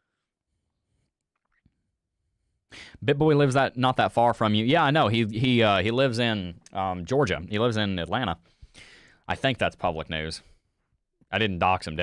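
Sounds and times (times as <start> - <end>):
man breathing into microphone: 2.7 - 3.0, 8.4 - 9.2
man speaking: 3.0 - 8.4, 9.2 - 10.6, 11.3 - 12.0.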